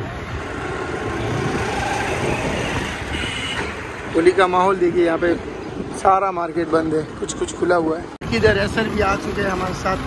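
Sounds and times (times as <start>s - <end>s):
moving vehicle road noise: 0.0s - 10.0s.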